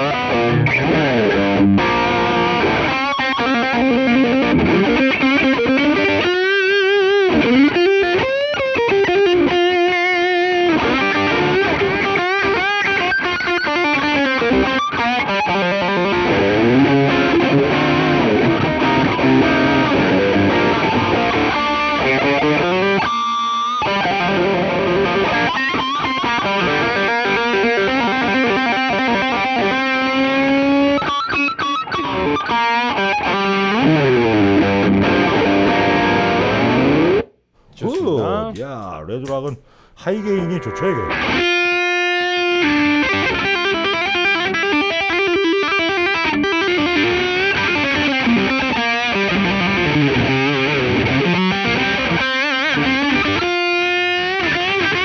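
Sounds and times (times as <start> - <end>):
distorted electric guitar lead: 0.0 - 39.4, 40.0 - 55.0.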